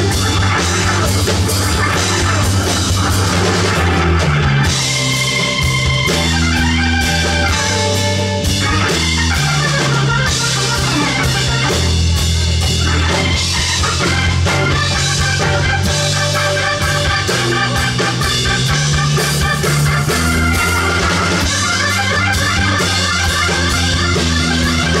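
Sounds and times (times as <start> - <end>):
blues-rock band playing: 0.0 - 25.0.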